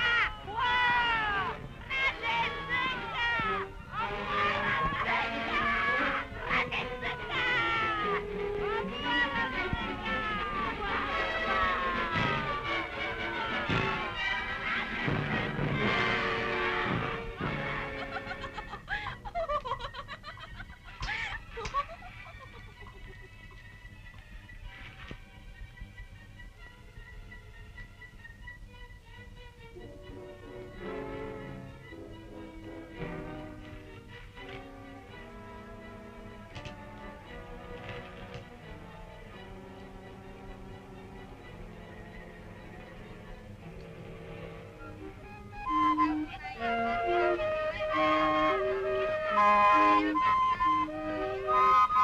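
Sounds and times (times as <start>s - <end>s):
women shrieking and yelling: 0.0s - 12.4s
film music: 0.0s - 52.0s.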